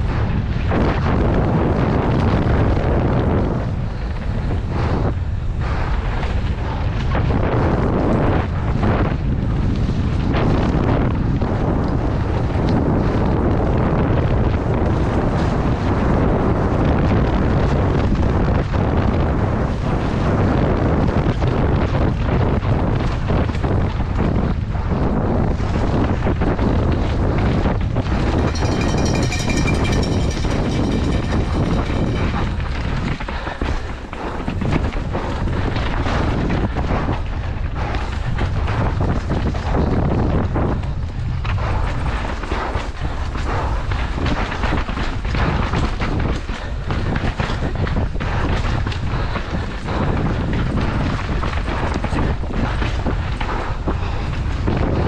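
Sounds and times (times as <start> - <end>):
wind buffeting microphone: 0.0 - 55.0
bike rattling and knocking: 7.4 - 55.0.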